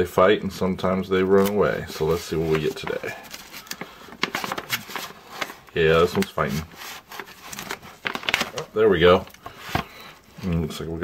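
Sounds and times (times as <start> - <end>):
plastic bag rustling: 1.4 - 10.8.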